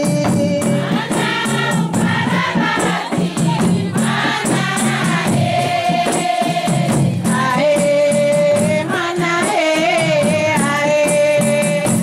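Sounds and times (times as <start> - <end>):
frame drums beating: 0.0 - 12.0
women's chorus singing: 0.0 - 12.0.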